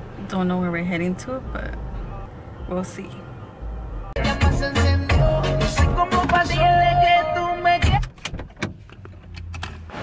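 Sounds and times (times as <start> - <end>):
car doors and latches clicking: 7.8 - 9.8.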